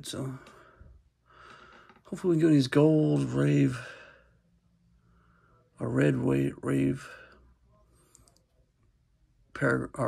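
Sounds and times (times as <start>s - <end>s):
person speaking: 0.0s - 0.7s, 2.0s - 4.1s.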